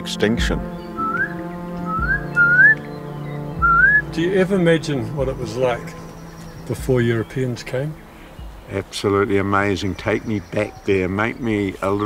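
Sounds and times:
musical drone: 0.0s - 8.9s
bird whistling calls: 0.7s - 8.7s, 9.8s - 12.0s.

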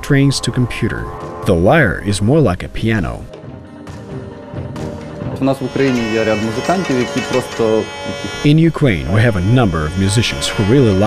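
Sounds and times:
hurdy-gurdy drone and melody: 5.4s - 11.0s.

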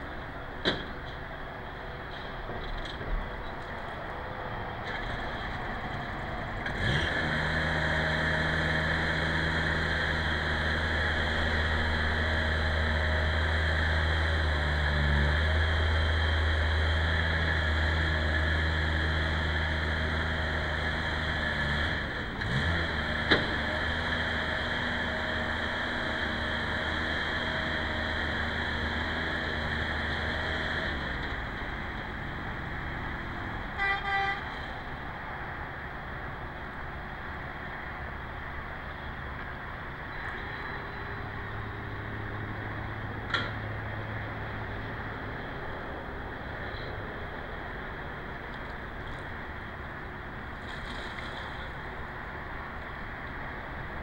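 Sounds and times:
engine humming: 0.0s - 54.0s.

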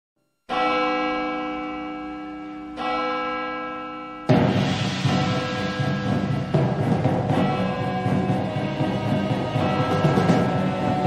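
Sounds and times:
church bell tolling: 0.5s - 11.0s.

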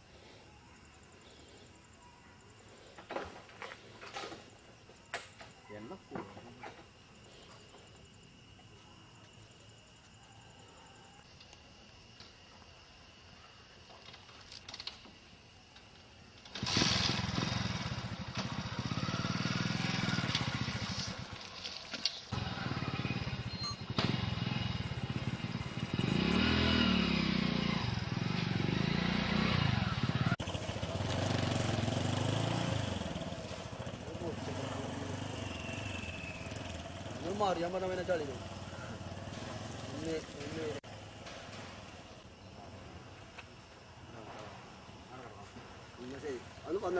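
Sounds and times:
motorcycle engine revving: 16.4s - 21.6s, 22.3s - 42.3s.

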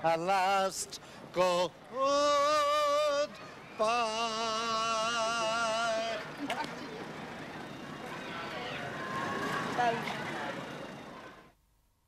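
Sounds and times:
passing traffic: 0.0s - 11.6s.

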